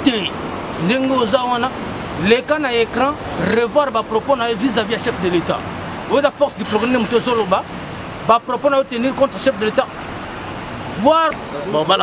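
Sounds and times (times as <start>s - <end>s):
rushing background noise: 0.0s - 12.0s.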